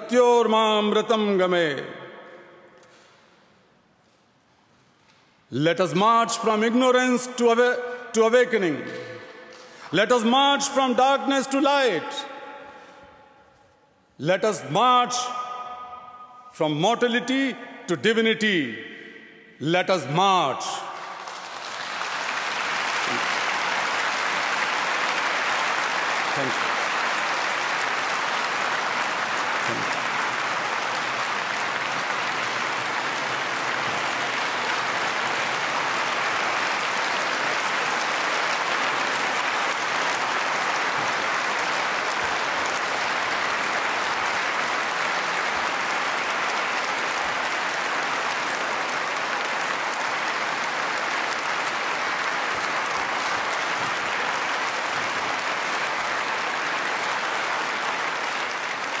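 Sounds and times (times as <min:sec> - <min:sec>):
large audience clapping: 0:02.8 - 0:03.7, 0:08.3 - 0:13.2, 0:20.4 - 0:59.0.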